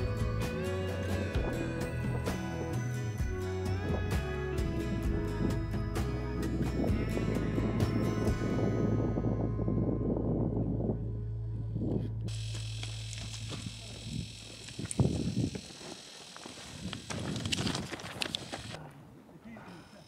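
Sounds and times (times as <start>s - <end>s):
background music: 0.0s - 11.6s.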